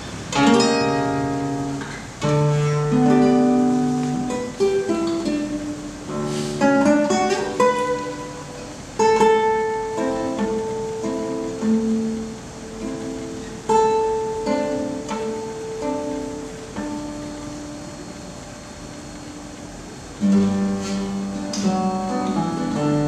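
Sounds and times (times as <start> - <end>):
acoustic guitar playing: 0.0 - 23.0.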